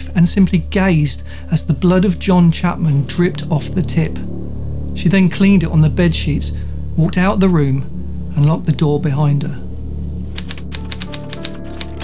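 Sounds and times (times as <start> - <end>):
background music: 0.0 - 12.0
typewriter keys clicking: 10.4 - 12.0.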